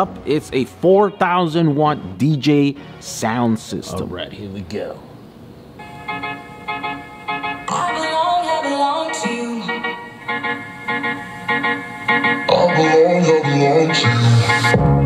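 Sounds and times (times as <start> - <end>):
song over pa speakers: 5.9 - 15.0.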